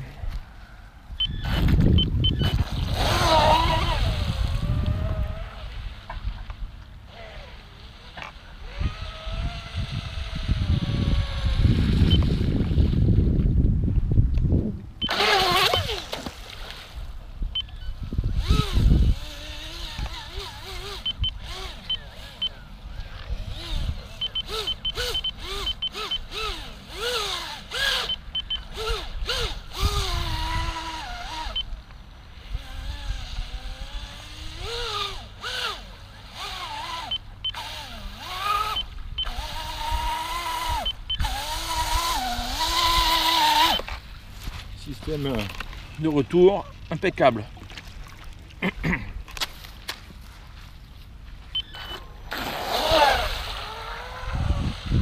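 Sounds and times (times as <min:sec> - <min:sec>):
wind gusts on microphone: 0:00.0 - 0:06.5, 0:08.5 - 0:16.1, 0:16.9 - 0:22.0, 0:22.9 - 0:26.5, 0:28.8 - 0:31.6, 0:51.7 - 0:55.0
toy boat motor whining: 0:01.2 - 0:05.7, 0:07.0 - 0:12.4, 0:15.0 - 0:16.1, 0:17.6 - 0:31.7, 0:32.3 - 0:44.0, 0:51.6 - 0:55.0.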